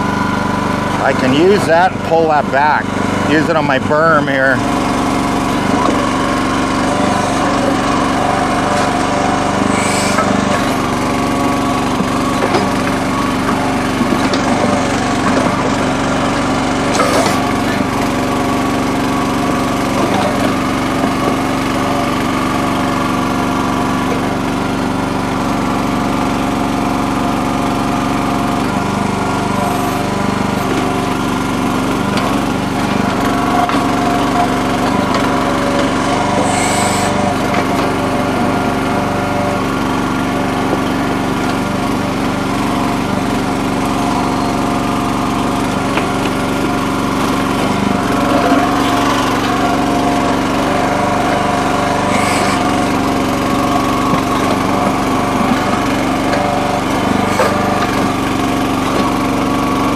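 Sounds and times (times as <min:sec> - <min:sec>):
small gasoline engine running: 0:00.0 - 0:59.9.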